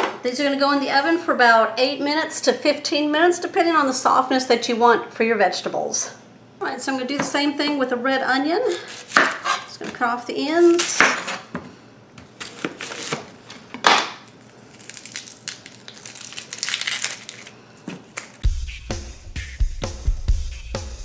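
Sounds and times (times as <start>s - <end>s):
knife chopping onion on board: 8.8s - 10.0s, 10.7s - 11.7s
onion skin crackling: 12.3s - 18.4s
music with heavy bass: 18.4s - 21.0s.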